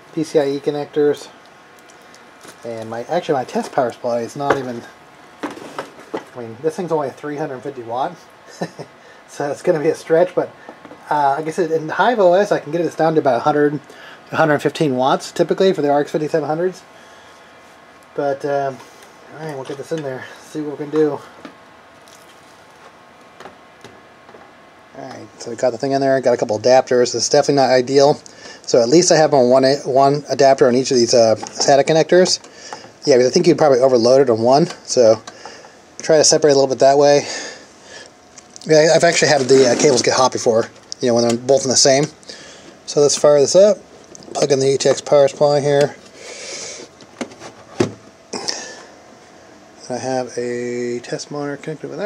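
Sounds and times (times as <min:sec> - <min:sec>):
low room noise: 0:00.0 - 0:52.0
cables rustling: 0:38.0 - 0:42.1.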